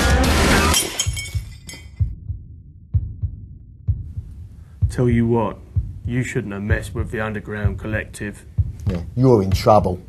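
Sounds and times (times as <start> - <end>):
loud rock music: 0.0 - 0.8
shattering crash: 0.0 - 1.9
low heartbeat sound effect: 2.0 - 10.0.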